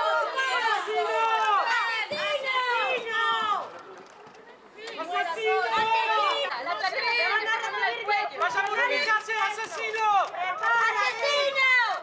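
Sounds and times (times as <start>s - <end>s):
crowd shouting: 0.0s - 3.8s, 4.8s - 12.0s.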